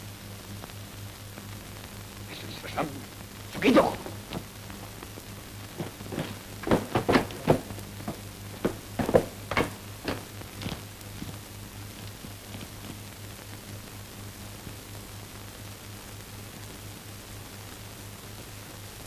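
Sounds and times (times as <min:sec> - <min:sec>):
film soundtrack hum and hiss: 0:00.0 - 0:19.0
short irregular knocks: 0:05.8 - 0:10.8.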